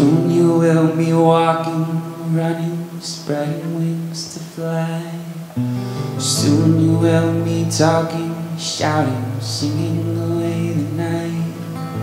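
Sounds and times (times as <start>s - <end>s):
acoustic guitar: 0.0s - 12.0s
man singing long notes: 0.0s - 12.0s.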